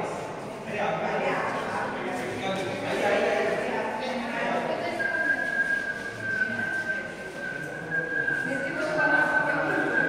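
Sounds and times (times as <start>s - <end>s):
people talking indistinctly: 0.0s - 10.0s
steady high whistle tone: 4.6s - 10.0s.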